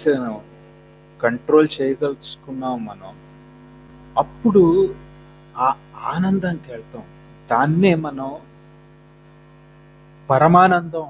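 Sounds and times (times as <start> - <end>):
electrical mains hum: 0.0 - 11.0
man's voice: 1.2 - 3.2, 4.2 - 5.0, 5.6 - 8.4, 10.3 - 11.0.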